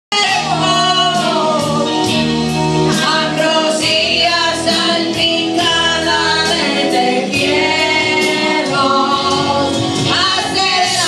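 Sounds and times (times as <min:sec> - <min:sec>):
women singing karaoke: 0:00.1 - 0:02.2, 0:02.9 - 0:11.0
recorded backing track: 0:00.1 - 0:11.0.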